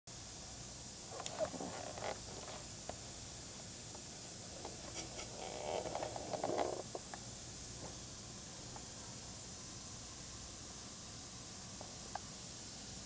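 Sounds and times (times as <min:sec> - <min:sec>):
steam radiator hissing: 0:00.1 - 0:13.0.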